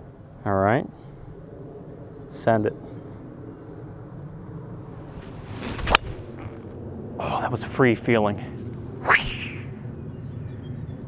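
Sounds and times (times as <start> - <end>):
golf club swishing: 5.1 - 6.7.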